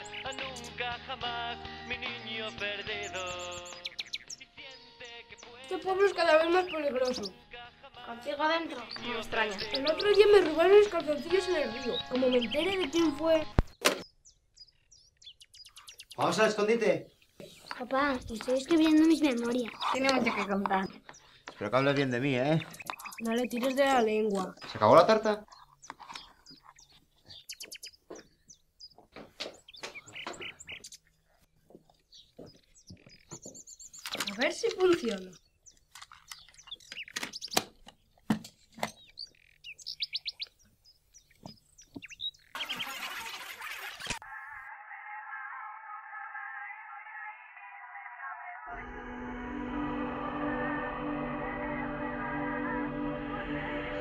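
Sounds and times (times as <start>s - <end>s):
faint birds chirping: 0.0s - 46.3s.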